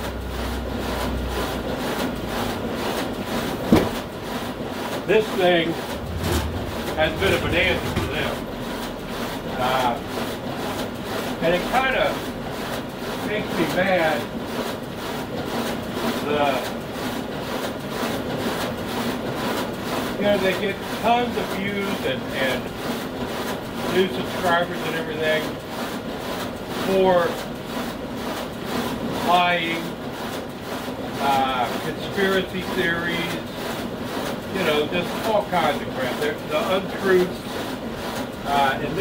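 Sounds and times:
print shop machinery running: 0:00.0 - 0:39.0
knock: 0:03.7 - 0:04.0
low hum: 0:05.7 - 0:09.6.

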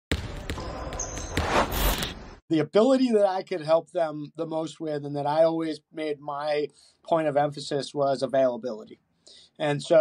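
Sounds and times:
basketball bouncing on hard court: 0:00.1 - 0:01.9.

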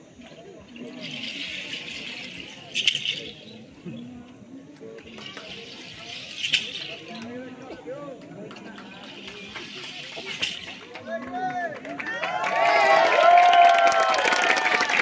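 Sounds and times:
crowd voices: 0:00.0 - 0:15.0
shaken rattles: 0:00.1 - 0:11.5.

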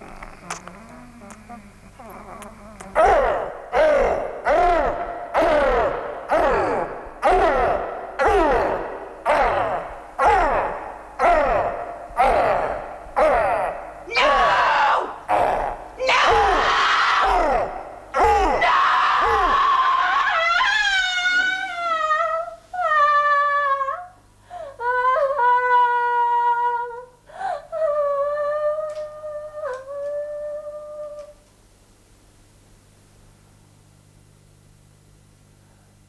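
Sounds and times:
high wavering wailing cries: 0:02.0 - 0:24.2
woman screaming: 0:03.8 - 0:15.2, 0:16.0 - 0:23.9.

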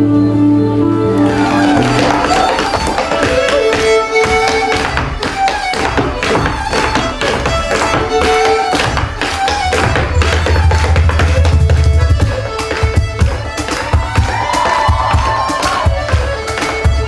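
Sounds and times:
folk band playing dance tune: 0:00.0 - 0:17.0
hard shoes tapping on wooden stage: 0:01.7 - 0:17.0.

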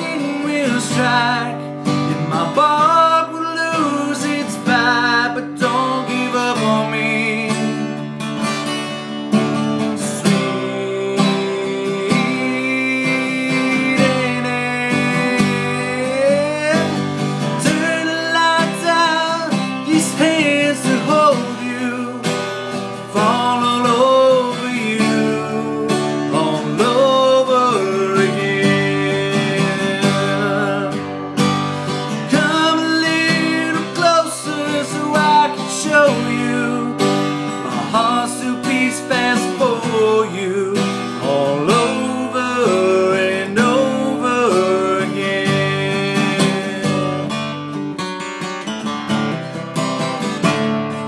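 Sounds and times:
man singing: 0:00.0 - 0:47.8
acoustic guitar strumming: 0:00.0 - 0:51.0.

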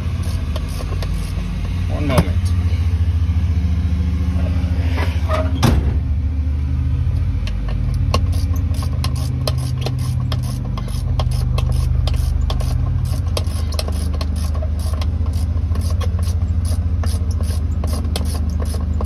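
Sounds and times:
engine idling: 0:00.0 - 0:19.0
hand ratchet clicking: 0:07.8 - 0:19.0.

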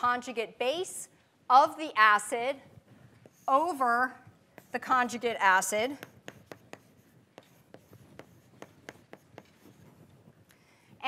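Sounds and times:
chalk tapping and scratching: 0:03.1 - 0:11.0.

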